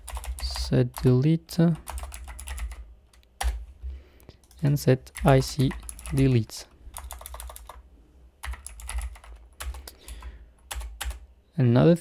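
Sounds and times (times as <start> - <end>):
computer keyboard typing: 0.0 - 1.2, 1.8 - 3.6, 4.4 - 7.8, 8.4 - 11.2.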